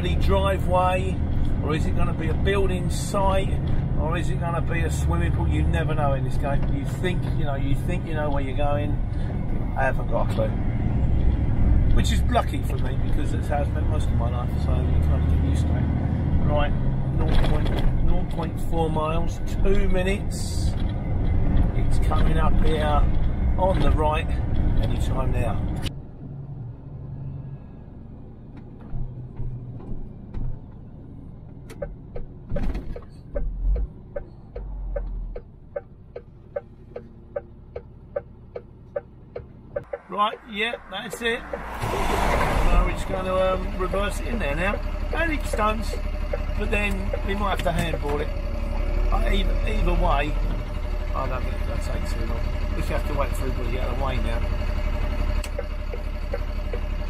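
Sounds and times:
low bumps: 0:00.0 - 0:26.0, 0:28.1 - 0:57.0
truck engine and road rumble: 0:00.0 - 0:57.0
turn indicator ticking: 0:31.5 - 0:42.3, 0:43.0 - 0:57.0.

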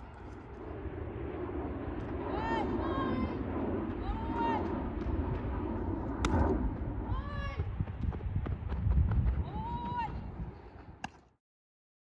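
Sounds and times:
wind rumbling on microphone: 0:00.0 - 0:11.3
footsteps running on dirt: 0:07.8 - 0:11.0.

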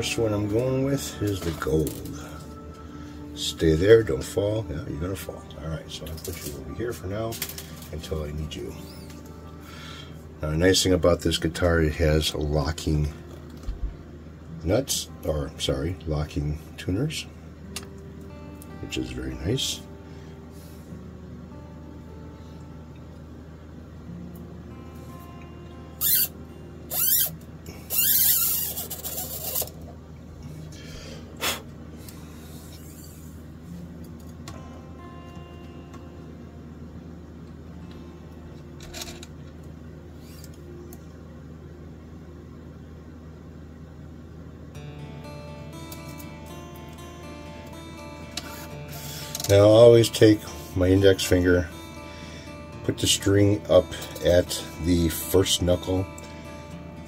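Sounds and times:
quiet background music: 0:00.0 - 0:57.0
guitar string rustling and scraping: 0:06.0 - 0:09.3, 0:26.9 - 0:30.0, 0:38.8 - 0:39.4, 0:48.3 - 0:49.8.

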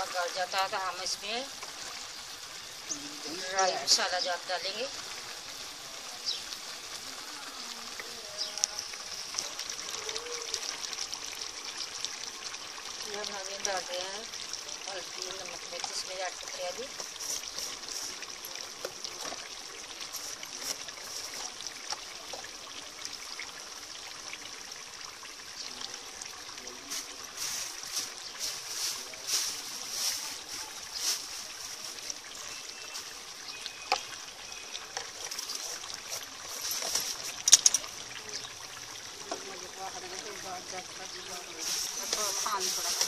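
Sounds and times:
meat sizzling in a pot: 0:00.0 - 0:43.0.

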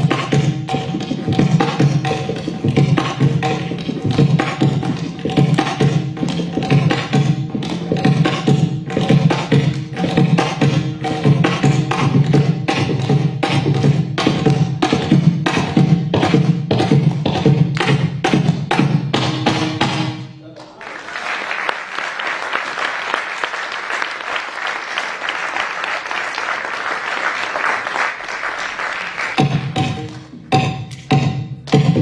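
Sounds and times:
hand-drum music: 0:00.0 - 0:20.4, 0:28.8 - 0:32.0.

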